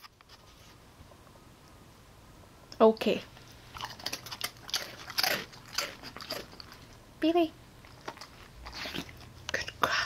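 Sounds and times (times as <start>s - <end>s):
dog crunching a treat: 3.4s - 7.0s, 7.8s - 9.8s.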